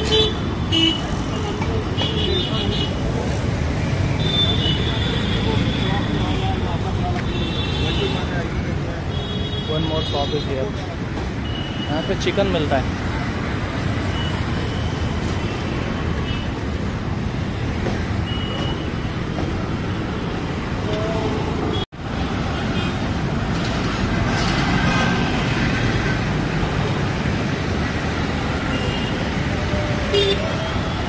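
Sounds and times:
busy road traffic: 0:00.0 - 0:31.0.

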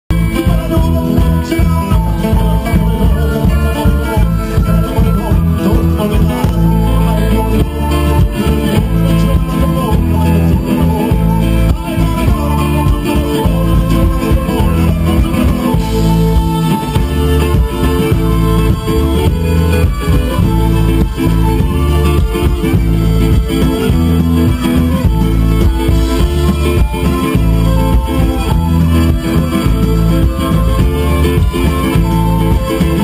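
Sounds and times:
accordion: 0:00.0 - 0:33.0
heavy bass guitar: 0:00.0 - 0:33.0
acoustic guitar: 0:00.1 - 0:33.0
clarinet: 0:00.1 - 0:33.0
violin: 0:00.1 - 0:33.0.

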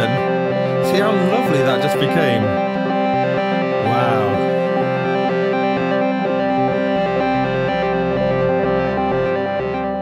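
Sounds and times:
stepping low bass notes: 0:00.0 - 0:10.0
synthesizer drone: 0:00.0 - 0:10.0.

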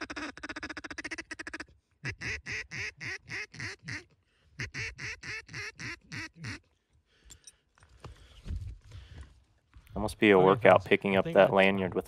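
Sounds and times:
duck call quacks: 0:00.0 - 0:06.7.

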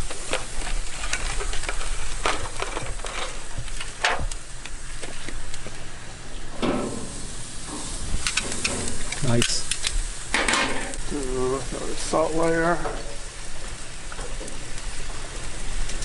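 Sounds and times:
fish sizzling on grill: 0:00.0 - 0:16.0
sharp crackles and clicks: 0:00.0 - 0:16.0.

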